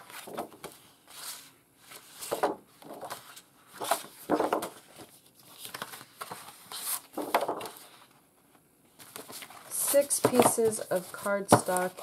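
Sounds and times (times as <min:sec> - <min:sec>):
paper sheets rustling: 0:00.0 - 0:08.1, 0:08.9 - 0:12.0.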